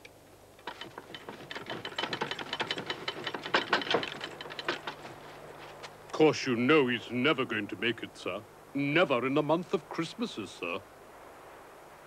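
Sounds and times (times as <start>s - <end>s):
rapid mechanical clicks: 0.6s - 5.2s.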